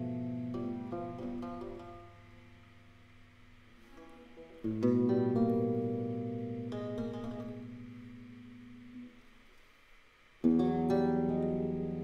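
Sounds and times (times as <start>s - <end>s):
lute chord ringing: 0.0s - 9.2s.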